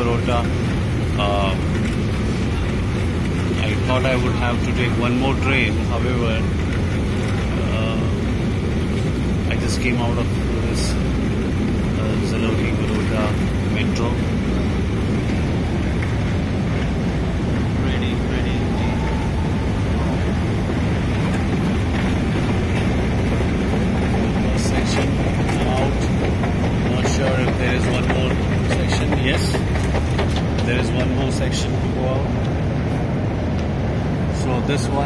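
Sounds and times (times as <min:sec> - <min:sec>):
escalator machinery rumble: 0:00.0 - 0:35.0.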